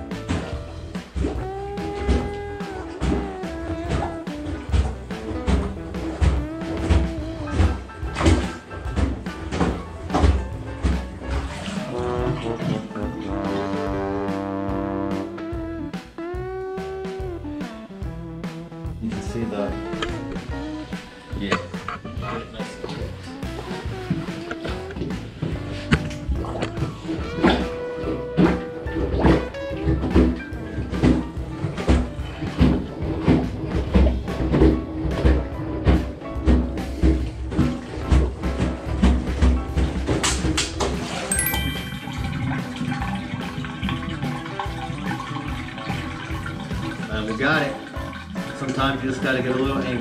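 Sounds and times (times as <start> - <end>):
plunger sloshing and sucking water: 0.0 - 15.2, 16.9 - 50.0
background music: 0.0 - 50.0.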